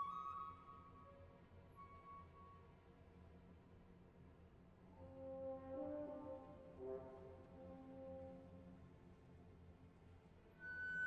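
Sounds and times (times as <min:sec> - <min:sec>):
quiet orchestral accompaniment: 0:04.9 - 0:09.3.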